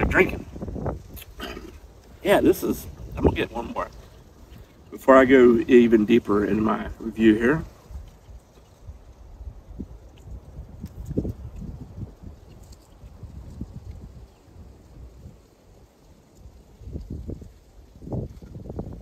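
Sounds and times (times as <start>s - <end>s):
low wind rumble on microphone: 0.0s - 19.0s.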